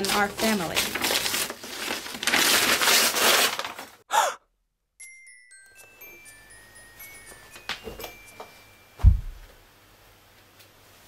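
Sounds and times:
wrapping paper tearing: 0.0 - 4.0
person sighing: 4.1 - 4.4.

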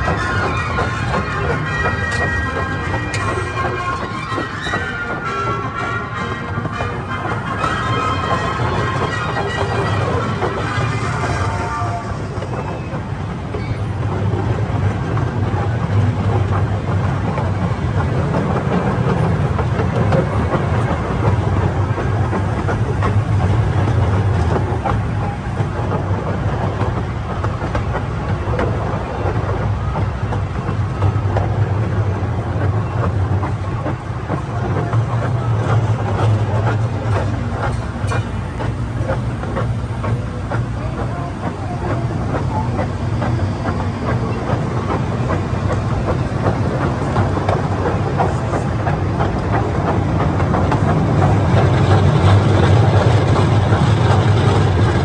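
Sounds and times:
train wheels clicking on rails: 0.0 - 55.0.

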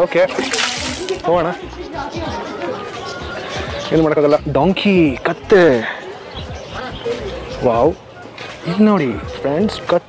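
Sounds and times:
background music: 0.0 - 10.0
people chattering: 0.0 - 10.0.

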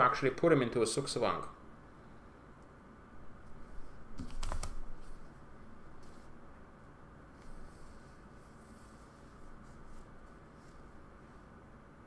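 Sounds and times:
keyboard keystrokes: 4.2 - 4.8.

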